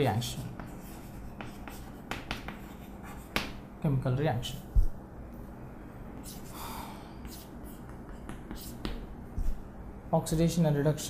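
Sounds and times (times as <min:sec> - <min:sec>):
chalk scratching on chalkboard: 0:00.2 - 0:03.6, 0:06.2 - 0:06.6, 0:07.2 - 0:09.6
chalk tapping on chalkboard: 0:00.3 - 0:03.6, 0:07.2 - 0:09.6.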